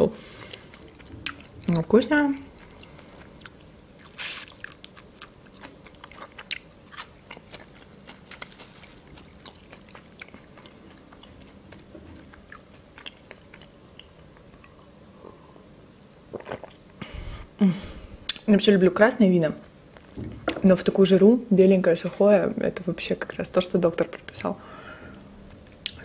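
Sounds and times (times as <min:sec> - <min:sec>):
crisp crunching of shrimp chewing: 0:02.5 - 0:14.8.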